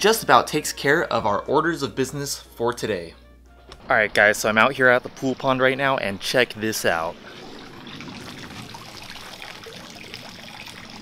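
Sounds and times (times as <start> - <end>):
water trickling into pond: 7.1 - 11.0.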